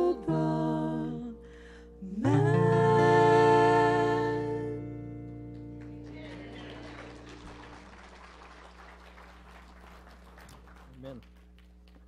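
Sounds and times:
acoustic guitar chord ringing: 0:00.0 - 0:07.8
audience applauding: 0:05.5 - 0:12.0.

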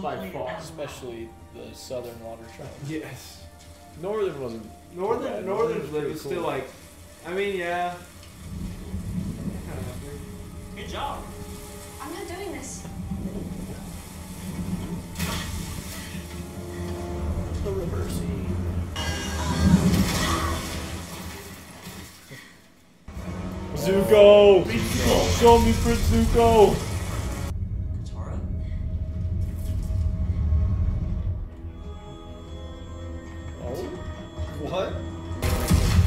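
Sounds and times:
low foreboding music: 0:00.0 - 0:22.2, 0:23.0 - 0:36.0
steady low rumble: 0:08.0 - 0:19.0, 0:23.1 - 0:31.8
thud with burst of noise: 0:35.4 - 0:36.0.

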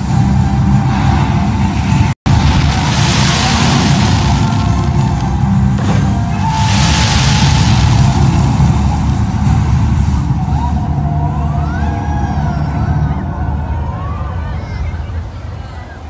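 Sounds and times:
loud soundtrack music: 0:00.0 - 0:14.6
fireworks rumbling: 0:00.0 - 0:16.0
burst of hiss: 0:02.3 - 0:10.6
whistle-like tones: 0:04.1 - 0:13.6.

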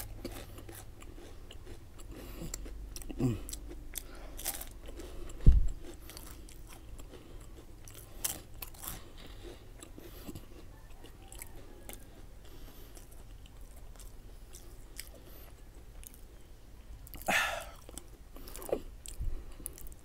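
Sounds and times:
crunchy chewing of wafer sticks: 0:00.0 - 0:20.0.

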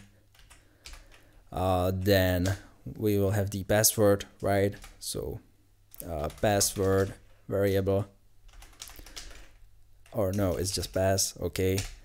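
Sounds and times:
quiet keyboard keystrokes: 0:00.0 - 0:02.7, 0:05.9 - 0:07.3, 0:08.5 - 0:12.0.

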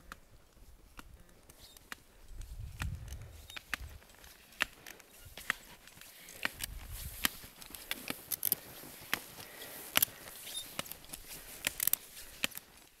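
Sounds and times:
crisp clicks and crunches: 0:00.0 - 0:13.0.

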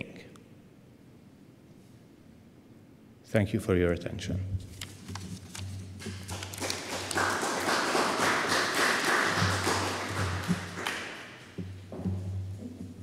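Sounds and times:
audience applauding: 0:06.0 - 0:11.6.

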